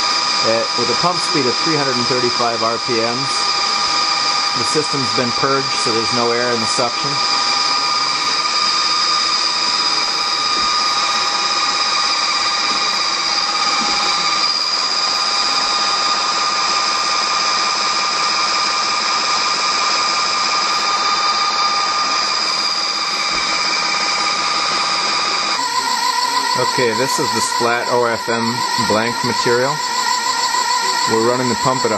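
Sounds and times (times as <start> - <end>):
high-pitched machine whine: 0.0 - 31.9.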